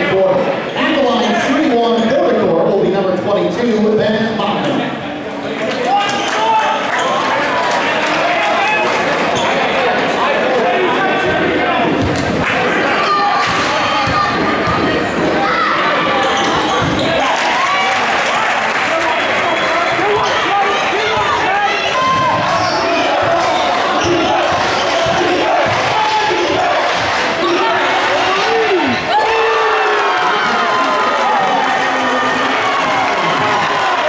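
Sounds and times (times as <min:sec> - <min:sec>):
crowd chatter: 0:00.0 - 0:34.0.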